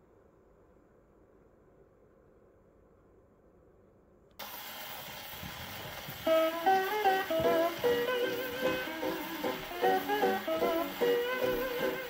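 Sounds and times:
record surface hiss: 0.0 - 12.0.

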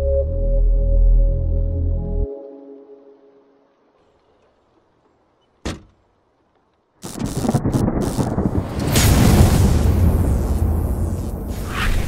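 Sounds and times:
rolling thunder rumble: 7.2 - 12.0
sharp thunder crack: 7.2 - 12.0.

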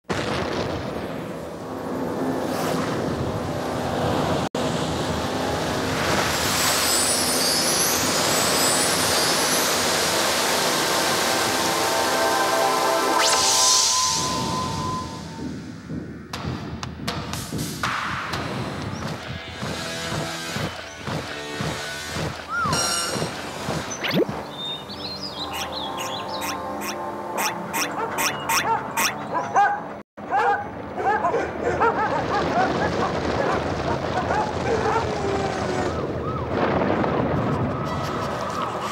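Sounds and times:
sustained tones: 4.9 - 15.2
animated film music: 9.8 - 29.9
cartoon chirping pitch glides: 25.5 - 29.2.

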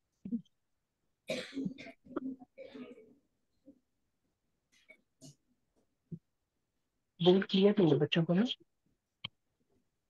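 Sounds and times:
person coughing and clearing throat: 1.2 - 3.1.

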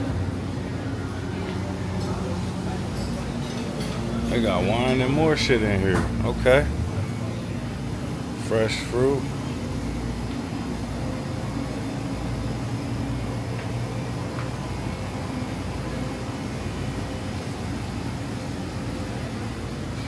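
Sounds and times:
hum of coolers and air conditioning: 0.0 - 20.0.

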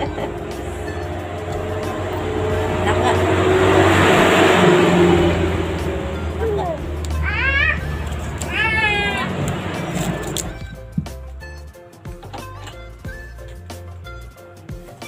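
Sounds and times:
baby fussing and crying: 6.2 - 10.3.

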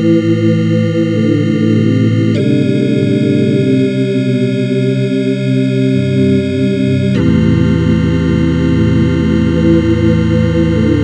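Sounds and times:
sustained synthesizer chords: 0.0 - 11.0.

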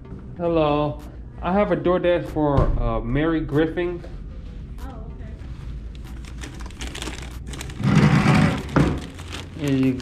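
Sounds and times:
plastic bag crinkling: 5.9 - 10.0.

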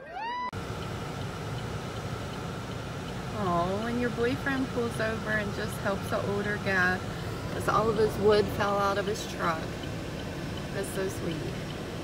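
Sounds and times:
car engine idling: 0.5 - 12.0
faint constant hum: 0.6 - 12.0.

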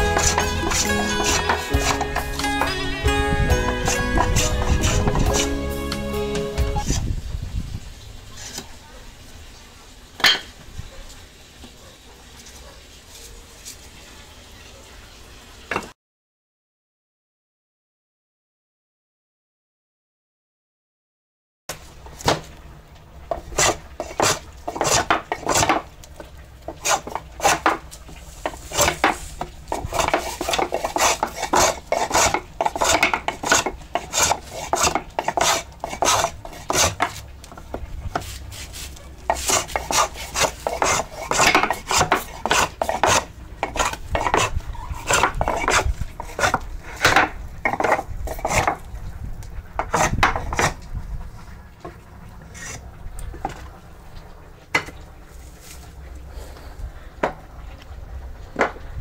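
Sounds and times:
hand plane shaving wood: 0.0 - 7.0, 23.3 - 25.8, 26.7 - 27.8, 28.4 - 37.2, 38.1 - 48.8, 49.8 - 50.8, 52.6 - 52.8.

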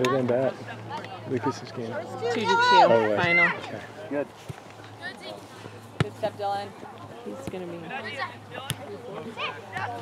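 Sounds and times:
voices calling across a field: 0.0 - 10.0.

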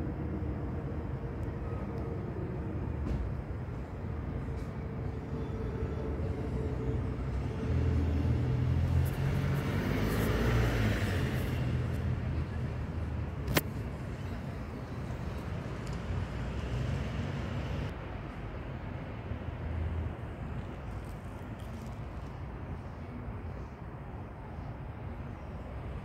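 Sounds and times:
road traffic rumble: 0.0 - 26.0
vehicle passing close by: 7.0 - 13.4.

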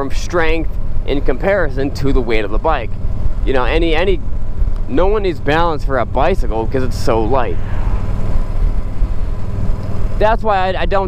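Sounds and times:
motorcycle engine rumbling: 0.0 - 11.0.

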